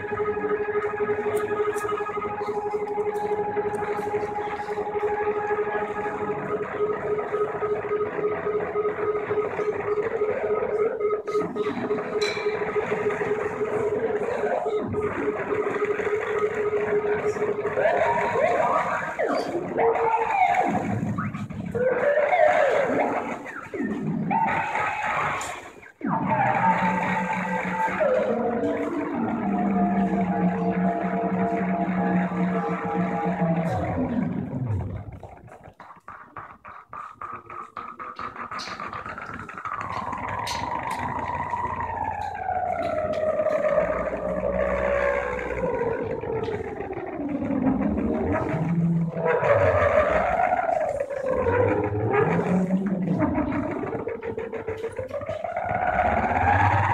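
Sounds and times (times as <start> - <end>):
distorted synthesizer music: 0.0 - 56.9
fast clicking stutter: 0.0 - 56.9.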